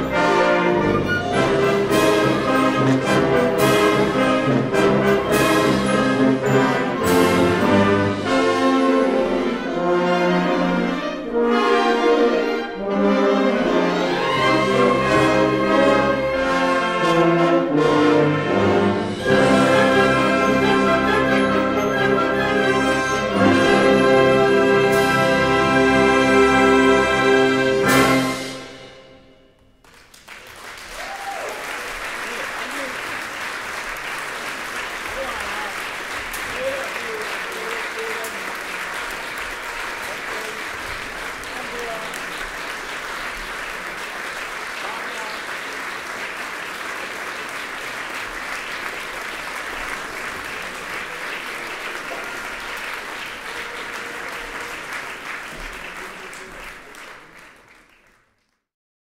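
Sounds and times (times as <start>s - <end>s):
audience applauding: 0.0s - 11.1s, 29.8s - 58.7s.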